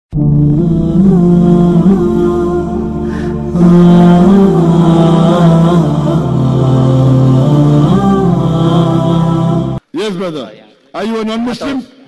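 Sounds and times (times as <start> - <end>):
chant-like music with sustained voice: 0.1 - 9.9.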